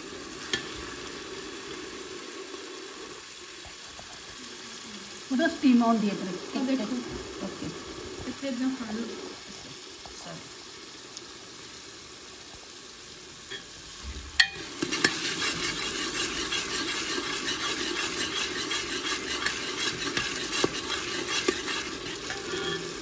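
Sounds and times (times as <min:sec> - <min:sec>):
onions sizzling in a pan: 0:00.0 - 0:23.0
spoon knocking and scraping pan: 0:00.5 - 0:00.8, 0:14.4 - 0:22.9.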